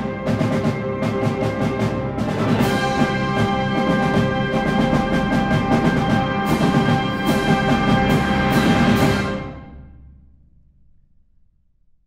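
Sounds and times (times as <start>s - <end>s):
drum strokes: 0.0s - 9.8s
wind band sustained chord: 0.0s - 10.0s.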